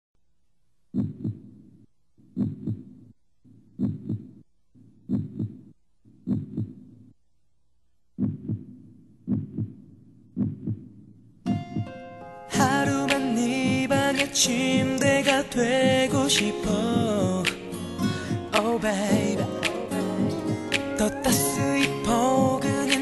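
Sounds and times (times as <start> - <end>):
heartbeat thumps: 0.9 - 1.6, 2.2 - 7.0, 8.2 - 12.0, 13.6 - 17.4, 18.2 - 21.8, 22.4 - 22.9
music: 11.5 - 23.0.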